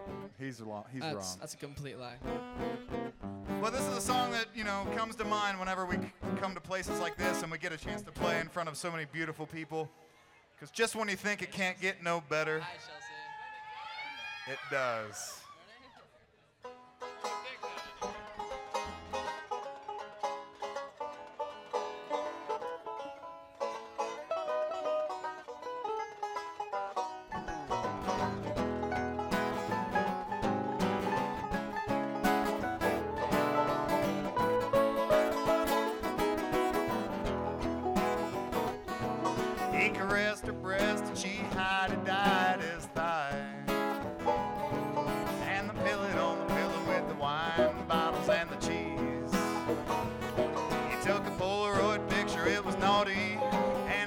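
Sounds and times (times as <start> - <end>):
bluegrass band playing: 0.0 - 0.4, 2.2 - 8.9, 16.6 - 54.0
person singing: 3.6 - 6.4, 39.6 - 43.8, 45.4 - 49.9, 50.9 - 54.0.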